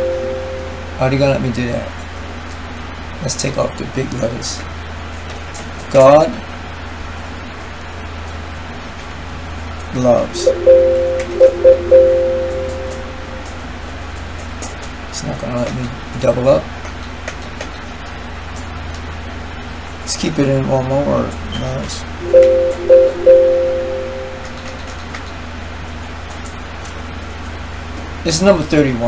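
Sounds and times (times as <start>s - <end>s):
computer alert chime: 0.0s - 0.8s, 10.4s - 13.6s, 22.2s - 24.9s
held tone: 0.0s - 1.0s, 10.3s - 13.7s, 22.2s - 24.9s
low electrical hum: 0.0s - 29.0s.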